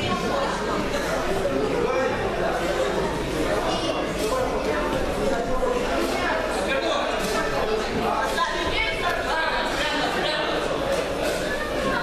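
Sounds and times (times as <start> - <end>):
crowd chatter in a large hall: 0.0 - 12.0.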